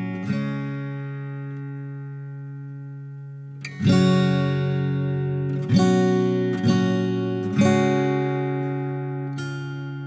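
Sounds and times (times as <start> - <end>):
strummed acoustic guitar chord: 0.0 - 10.0.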